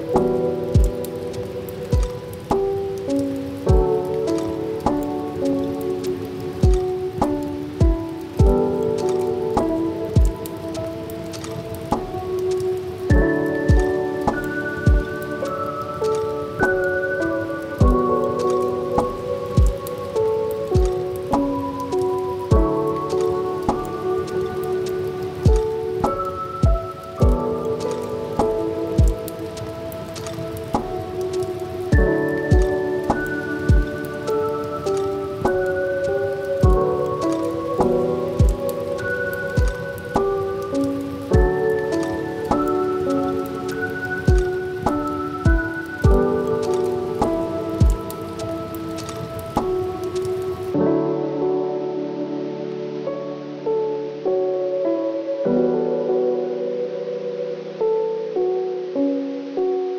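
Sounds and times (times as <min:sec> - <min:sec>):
mellow chill music: 0:00.0 - 0:59.9
steady rain: 0:00.0 - 0:59.9
soft drum beat: 0:00.2 - 0:01.0, 0:01.9 - 0:02.7, 0:03.7 - 0:03.9, 0:06.6 - 0:10.4, 0:13.1 - 0:15.1, 0:17.8 - 0:18.0, 0:19.0 - 0:19.8, 0:20.8 - 0:21.5, 0:22.5 - 0:23.9, 0:25.5 - 0:29.7, 0:31.9 - 0:33.9, 0:36.6 - 0:36.8, 0:37.8 - 0:38.6, 0:39.6 - 0:40.3, 0:44.3 - 0:46.3, 0:47.2 - 0:48.0.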